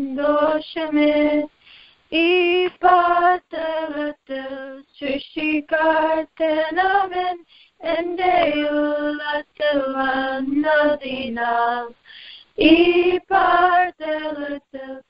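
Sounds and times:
woman singing unaccompanied: 0.0s - 15.0s.

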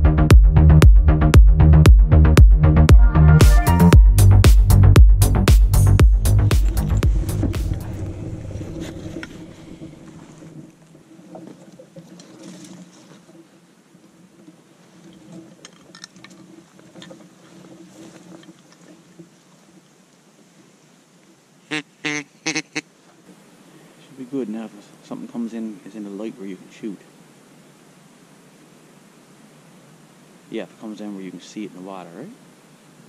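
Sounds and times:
electronic dance music: 1.4s - 7.2s, 21.7s - 22.8s
loud duck quacks: 21.7s - 22.9s.

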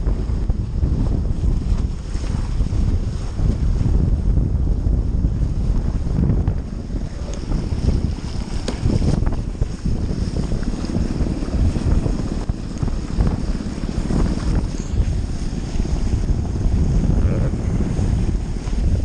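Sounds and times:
water rushing along hulls: 0.0s - 19.0s
wind buffeting microphone: 0.0s - 19.0s.

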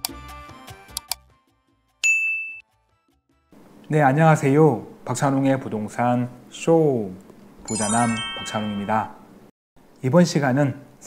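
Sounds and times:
notification bell ding: 7.7s - 9.2s.

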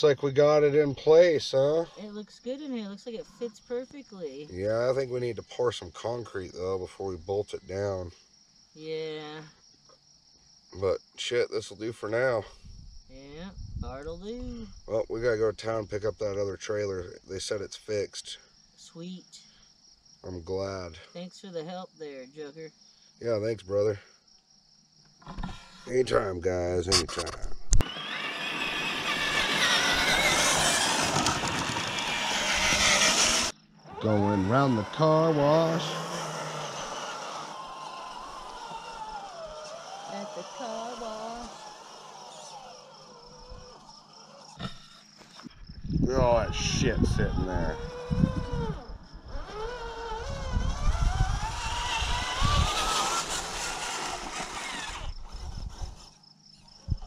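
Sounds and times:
electric motor and gearbox whine: 25.1s - 45.5s, 46.1s - 57.0s.

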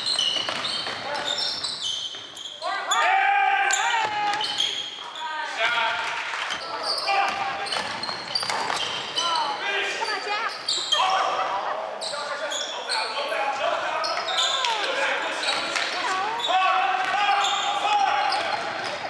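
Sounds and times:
sneakers squeaking on hardwood floor: 0.0s - 5.6s, 6.4s - 19.0s
players shouting: 16.1s - 18.9s.

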